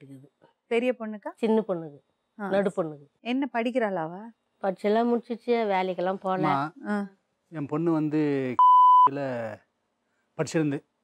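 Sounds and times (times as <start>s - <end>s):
man speaking: 6.4s - 6.7s, 7.6s - 9.6s, 10.4s - 10.8s
censor bleep: 8.6s - 9.2s.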